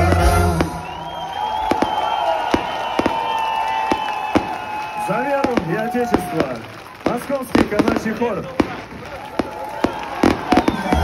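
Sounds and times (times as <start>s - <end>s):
music: 0.0s - 1.2s
crowd voices: 0.0s - 11.0s
fireworks bangs and pops: 0.0s - 11.0s.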